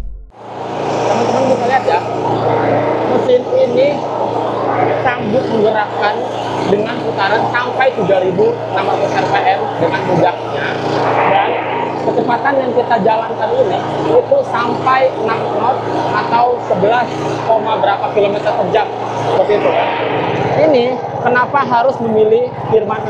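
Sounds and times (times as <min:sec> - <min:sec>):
boat engine drone: 0:00.4 - 0:23.0
man talking: 0:01.0 - 0:04.1, 0:04.7 - 0:23.0.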